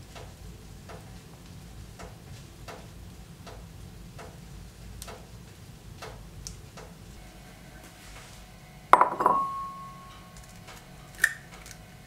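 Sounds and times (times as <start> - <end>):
wood fire crackling: 0.0 - 12.0.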